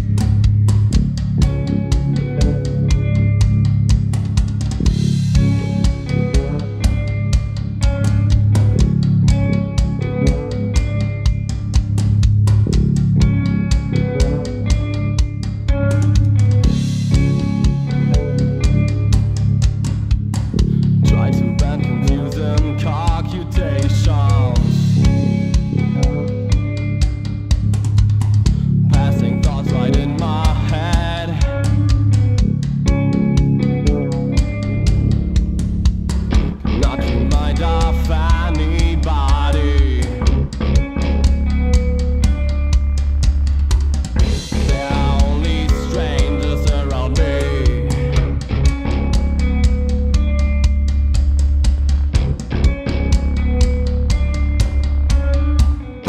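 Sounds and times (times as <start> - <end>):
rock band instrumental: 0.0 - 56.0
wavering bending melody line: 12.7 - 56.0.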